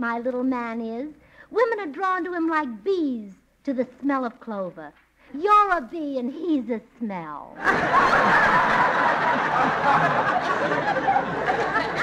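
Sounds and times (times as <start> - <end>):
audience laughing loudly: 7.6 - 12.0.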